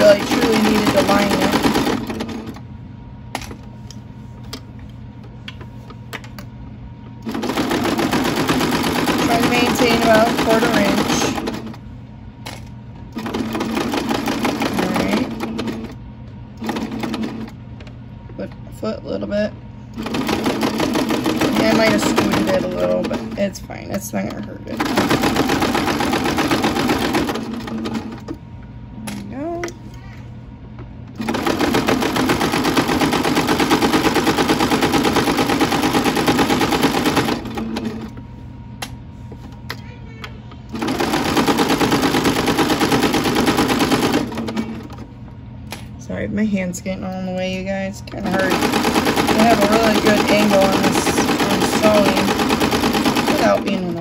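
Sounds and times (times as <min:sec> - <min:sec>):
sewing machine stitching: 0:00.0 - 0:02.6, 0:07.2 - 0:11.8, 0:13.2 - 0:16.0, 0:20.0 - 0:23.4, 0:24.7 - 0:28.3, 0:31.2 - 0:38.1, 0:40.7 - 0:45.0, 0:48.2 - 0:54.0.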